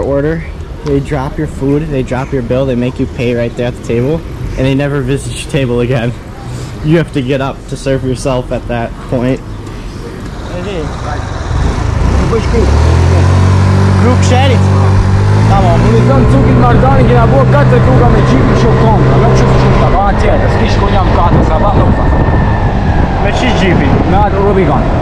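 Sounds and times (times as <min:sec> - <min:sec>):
street traffic noise: 0:00.0 - 0:25.0.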